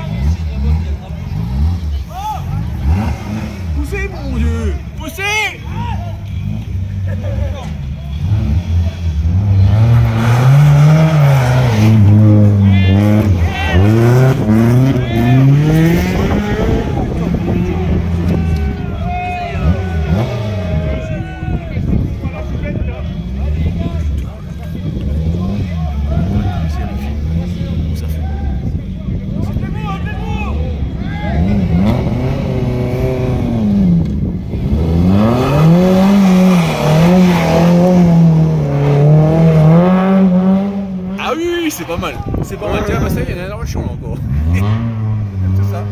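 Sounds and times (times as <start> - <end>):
rally car engine revving: 0.0 - 45.9.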